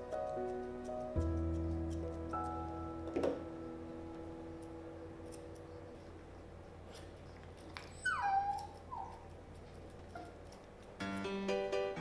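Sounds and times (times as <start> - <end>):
puppy whining: 5.3 - 10.9.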